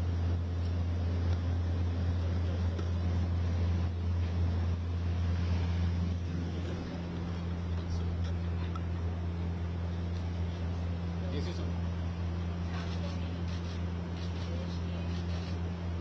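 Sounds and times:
steady low hum: 0.0 - 16.0
distant voices: 1.0 - 16.0.

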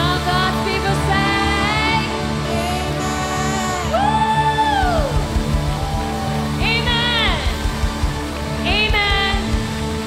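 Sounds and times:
low drum hits: 4.8 - 10.0
sustained keyboard chords: 4.8 - 10.0.

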